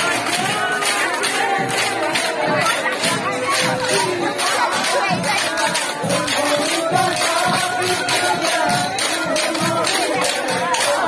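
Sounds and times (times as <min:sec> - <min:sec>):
steady percussion beat: 0:00.0 - 0:11.0
women singing and shouting: 0:00.0 - 0:11.0.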